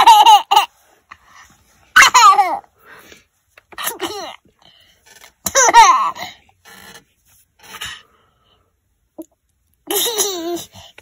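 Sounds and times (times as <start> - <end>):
baby giggling: 9.9 - 10.7.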